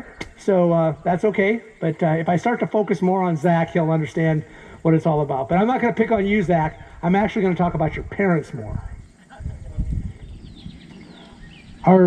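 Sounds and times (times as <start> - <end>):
high falling bird chirps: 5.6 - 7.6, 10.0 - 12.0.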